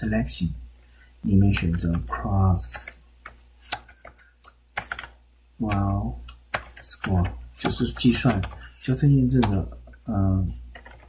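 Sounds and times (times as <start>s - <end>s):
computer keyboard typing: 1.5s - 9.7s, 10.7s - 11.0s.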